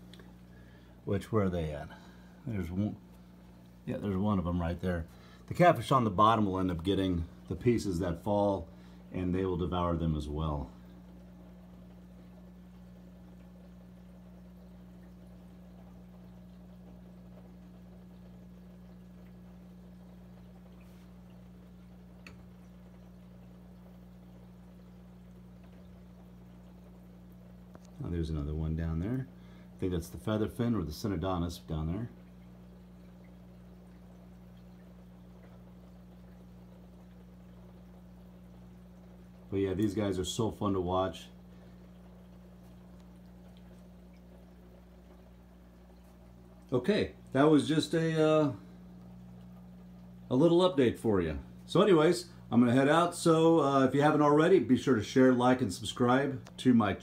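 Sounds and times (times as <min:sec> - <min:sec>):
aquarium filter humming: 0:00.0 - 0:57.0
water trickling: 0:00.0 - 0:57.0.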